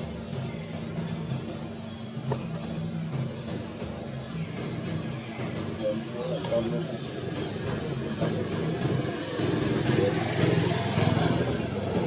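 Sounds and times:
motor engine running: 0:00.0 - 0:12.0
people talking: 0:05.4 - 0:12.0.

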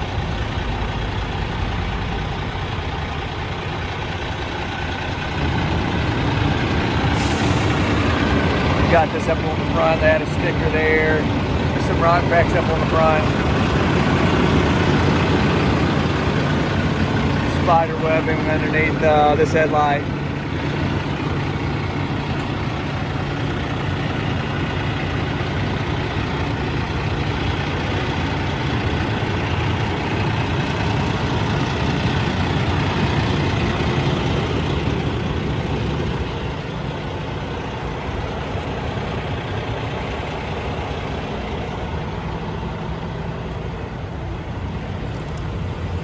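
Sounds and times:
diesel truck engine idling: 0:00.0 - 0:46.0.

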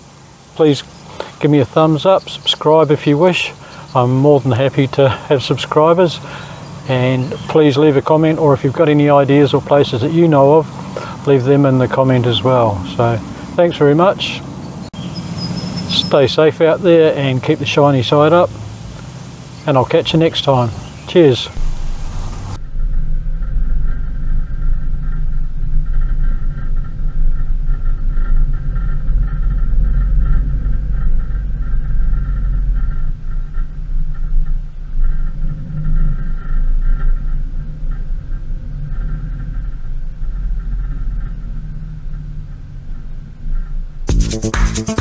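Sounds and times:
high whine: 0:00.0 - 0:45.0
van engine and road rumble: 0:00.0 - 0:45.0.

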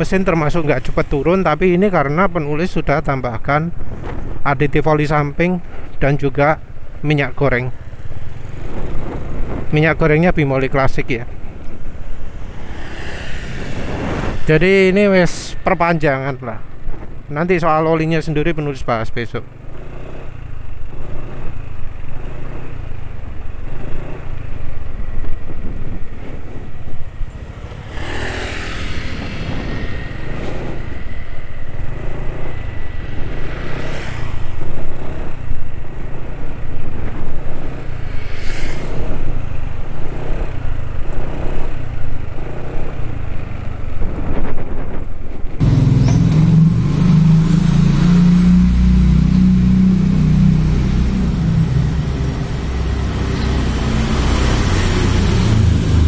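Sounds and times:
road and wind noise: 0:00.0 - 0:56.0
motorcycle engine running: 0:19.4 - 0:56.0.

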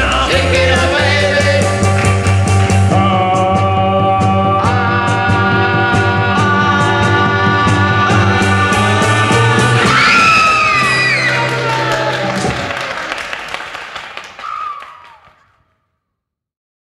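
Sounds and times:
rock and roll band music: 0:00.0 - 0:13.4
high voice crying out: 0:14.4 - 0:15.3.

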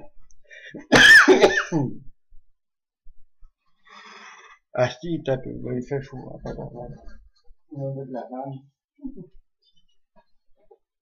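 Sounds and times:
man clearing his throat: 0:00.8 - 0:02.0.

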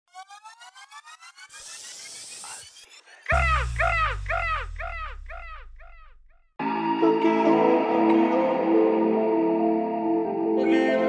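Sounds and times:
pulsing synth tone sweeping upward: 0:00.1 - 0:07.5
falling synth chirp: 0:00.2 - 0:06.3
deep bass hit: 0:03.3 - 0:06.3.

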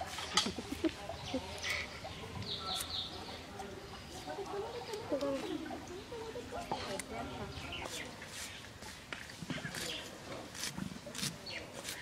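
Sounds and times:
onion cut against a blade: 0:09.7 - 0:12.0.

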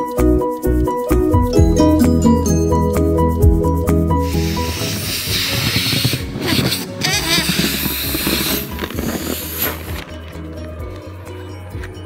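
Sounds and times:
tuned percussion music with bass: 0:00.0 - 0:12.0
air hissing from balloon: 0:04.1 - 0:10.2.

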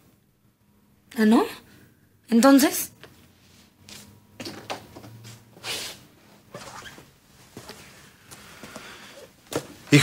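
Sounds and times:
clothing rustling: 0:04.9 - 0:10.0
footsteps: 0:07.4 - 0:10.0.

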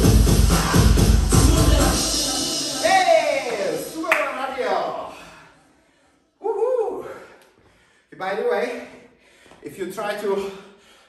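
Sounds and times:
man calling out: 0:01.4 - 0:05.3
sharp hand clap: 0:03.5 - 0:04.4.

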